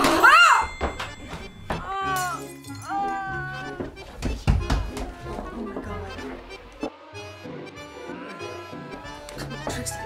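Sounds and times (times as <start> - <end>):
background music: 0.0 - 10.0
drawn-out wailing cry: 7.0 - 9.5.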